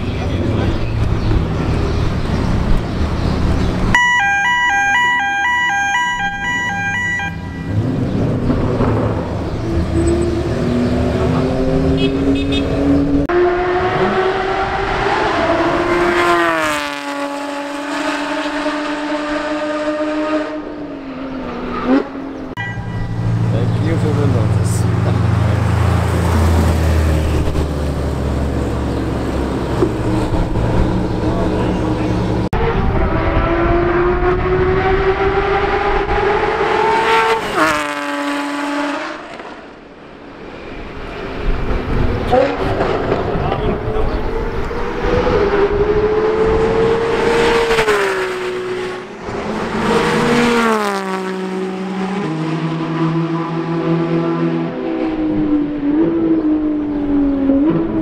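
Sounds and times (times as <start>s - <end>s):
sports car engine accelerating: 6.0s - 39.9s, 41.2s - 58.0s
deep engine rumble: 22.4s - 35.0s.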